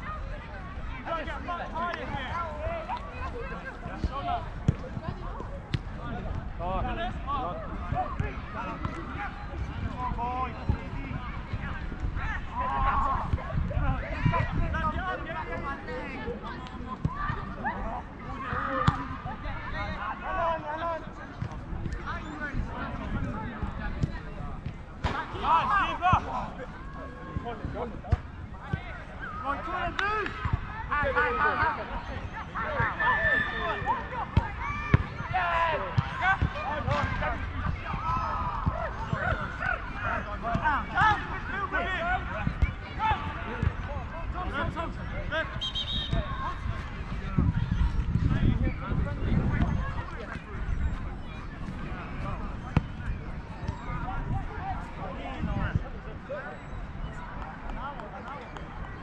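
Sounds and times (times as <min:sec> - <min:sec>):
distant shouts of footballers: 0:00.0 - 0:21.2, 0:25.0 - 0:59.0.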